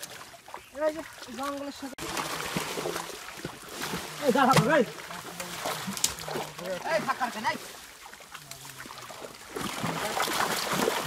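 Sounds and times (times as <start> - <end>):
water splashing in a net: 0.0 - 11.0.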